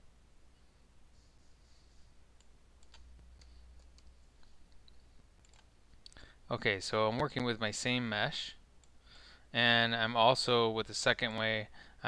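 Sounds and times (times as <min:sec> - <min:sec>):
low steady hum: 0:00.0 - 0:12.0
keyboard and mouse clicks: 0:02.4 - 0:06.2.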